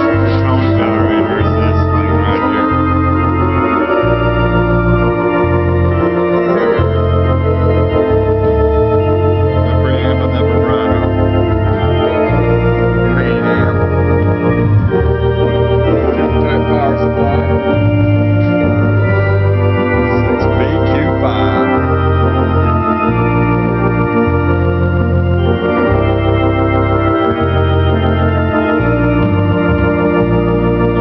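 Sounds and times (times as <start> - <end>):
bass line: 0.0 - 31.0
organ playing held chords: 0.0 - 31.0.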